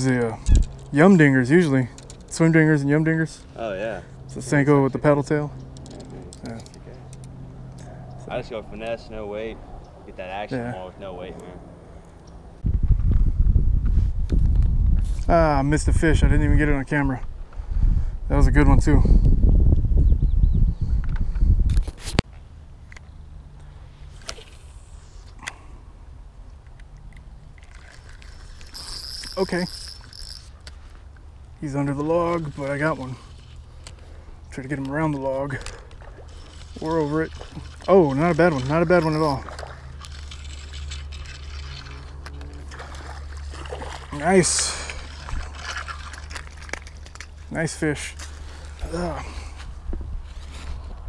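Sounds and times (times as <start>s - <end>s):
quiet outdoor background: 0.0s - 51.0s.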